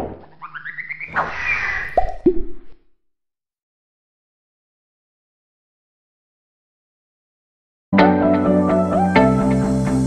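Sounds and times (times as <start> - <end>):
quick plops dropping in pitch: 2.0 - 2.8.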